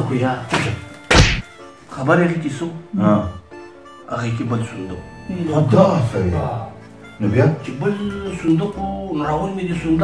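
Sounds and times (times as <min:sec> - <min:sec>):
background music: 0:00.0 - 0:10.0
heavy thud: 0:01.1 - 0:01.5.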